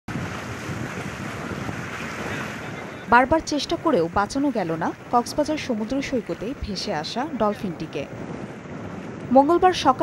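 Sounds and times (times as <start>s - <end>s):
sea surf washing: 0.1s - 10.0s
wind buffeting microphone: 0.1s - 10.0s.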